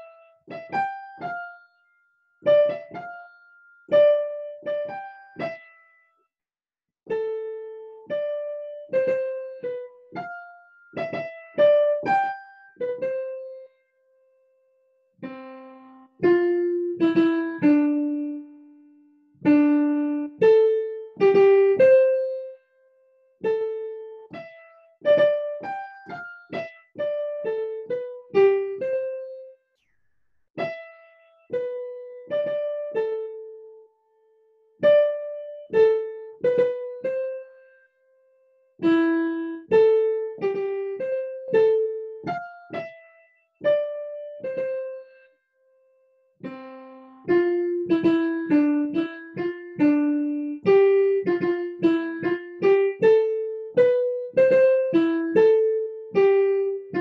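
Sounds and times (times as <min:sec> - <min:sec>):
digital piano melody: 0:00.0 - 0:06.0, 0:07.1 - 0:29.9, 0:30.6 - 0:45.3, 0:46.0 - 0:57.0.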